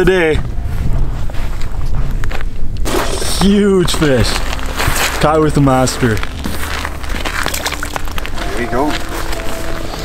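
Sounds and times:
wind rumbling on microphone: 0.0 - 3.2
faint crunches: 4.0 - 10.0.

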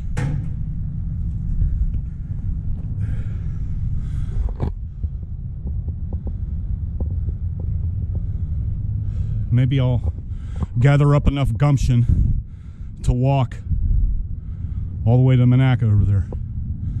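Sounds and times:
wind buffeting microphone: 0.0 - 15.1.

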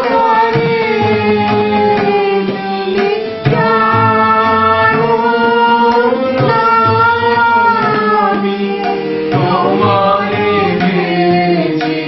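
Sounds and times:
group singing: 0.0 - 12.0
harmonium: 0.0 - 12.0.

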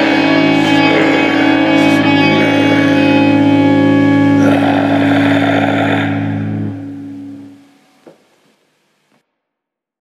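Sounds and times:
bass guitar: 0.0 - 8.3
distorted electric guitar chord: 0.0 - 8.3.

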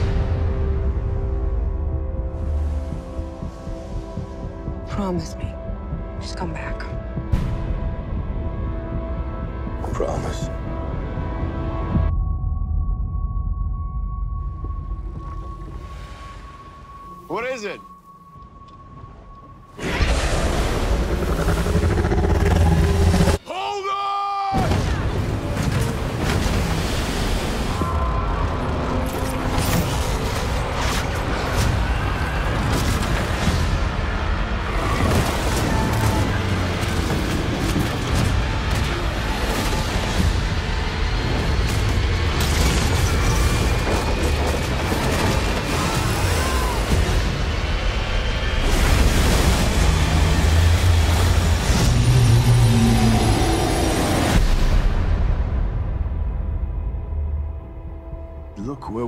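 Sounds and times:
trailer music: 0.0 - 23.5, 24.6 - 59.0
rushing sea water and waves: 15.1 - 17.8, 24.5 - 55.9
deep rumble: 18.3 - 23.4.

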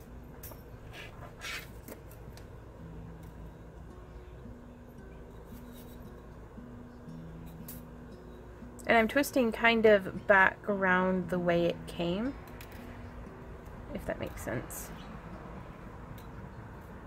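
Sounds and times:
wire rubbing with small ticks: 5.5 - 6.2.

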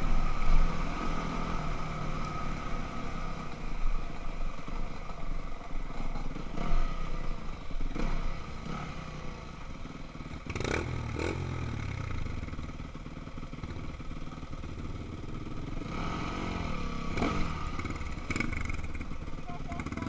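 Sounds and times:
dirt bike engine revving: 10.2 - 12.7, 15.3 - 20.0.

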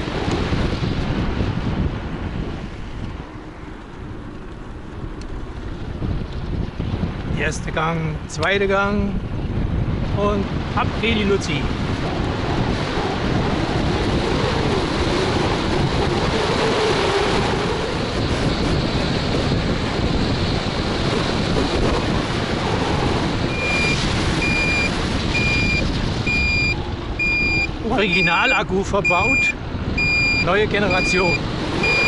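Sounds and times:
wind rushing over microphone: 0.0 - 32.0
turn signal beeping: 23.4 - 32.0.

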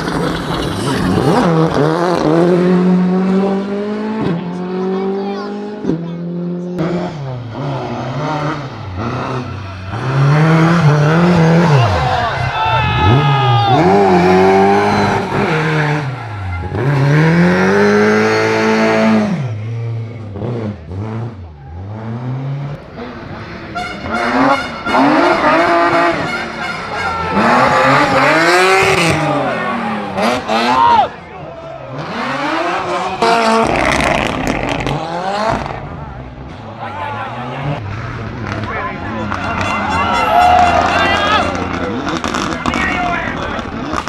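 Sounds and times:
rally car engines revving: 0.0 - 44.0.

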